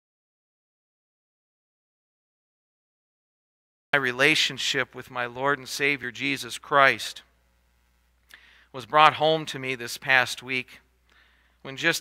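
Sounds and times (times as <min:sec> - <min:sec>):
man speaking: 0:04.0 - 0:07.3, 0:08.7 - 0:10.8, 0:11.6 - 0:12.0.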